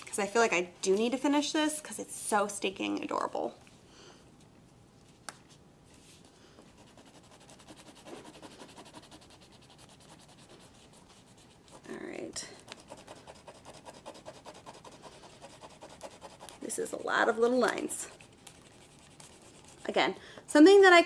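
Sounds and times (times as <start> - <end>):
pen scratching on paper: 6.8 - 12.0, 12.7 - 17.0.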